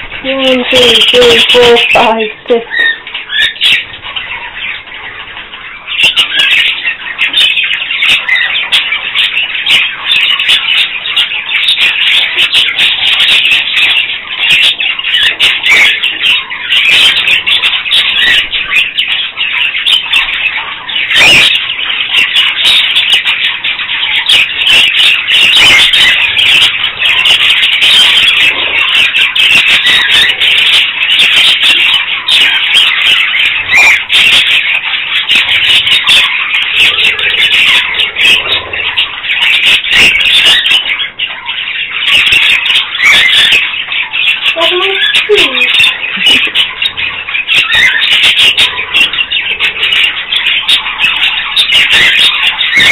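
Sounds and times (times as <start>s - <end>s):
budgerigars chattering and chirping: 0.0s - 52.9s.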